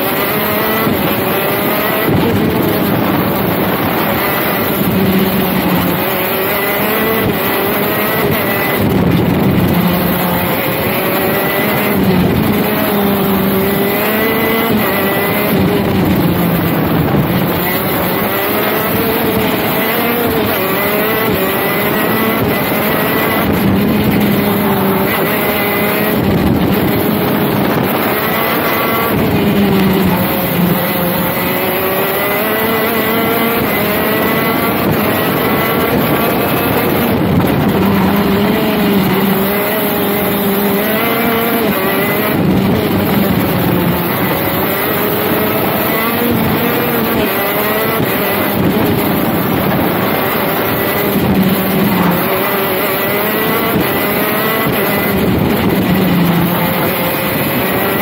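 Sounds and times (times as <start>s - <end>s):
kart engine revving: 0.0s - 58.0s.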